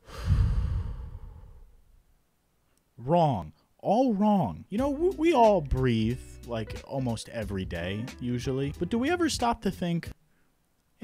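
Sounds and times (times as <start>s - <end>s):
man exhaling into microphone: 0.0s - 1.8s.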